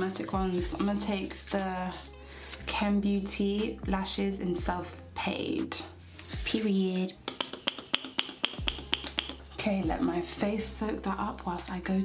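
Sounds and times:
fingers snapping: 0:07.3 - 0:09.4.

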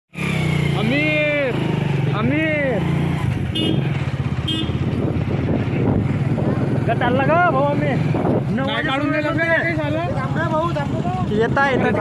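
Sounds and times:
motorcycle engine running: 0:00.2 - 0:12.0.

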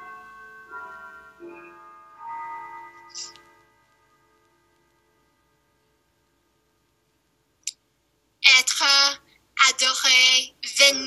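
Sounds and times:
faint bell-like tones: 0:00.0 - 0:07.1.

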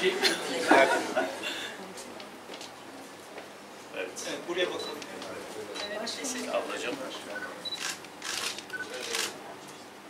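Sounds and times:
murmured talk: 0:00.0 - 0:10.0
camera shutters clicking: 0:07.8 - 0:09.4.

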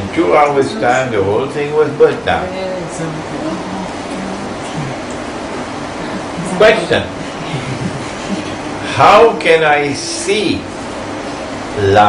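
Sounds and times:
faint low murmurs: 0:00.0 - 0:12.0
steady hiss: 0:00.0 - 0:12.0.

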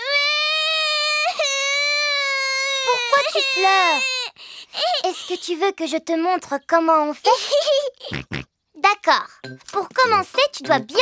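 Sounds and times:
cartoon piglet crying: 0:00.0 - 0:05.5.

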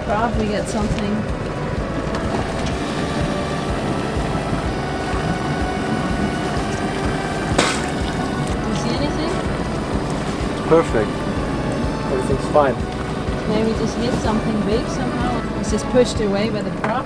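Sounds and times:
background music: 0:00.0 - 0:17.0
low rumble: 0:00.0 - 0:17.0.

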